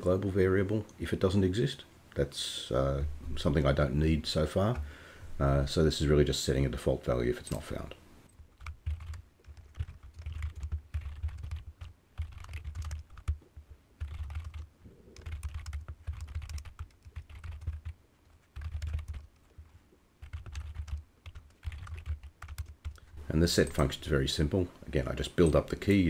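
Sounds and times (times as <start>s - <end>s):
typing on computer keyboard: 8.5s - 23.0s.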